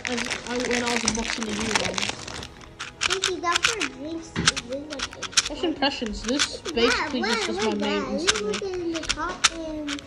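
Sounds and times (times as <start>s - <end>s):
voices talking: 0.0s - 2.2s, 2.8s - 10.0s
speed cube plastic clicks: 1.0s - 10.0s.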